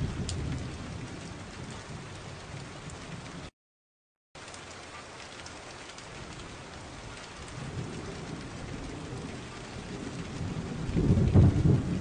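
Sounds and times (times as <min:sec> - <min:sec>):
low rumble of thunder: 0:00.0 - 0:03.5, 0:06.1 - 0:12.0
steady rain falling: 0:00.0 - 0:03.5, 0:04.4 - 0:12.0.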